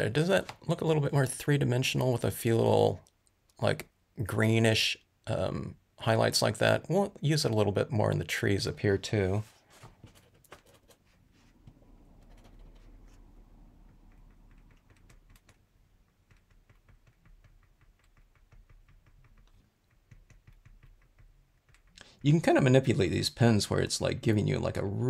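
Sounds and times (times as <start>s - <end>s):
paint pen tapping on card: 13.8s - 22.0s.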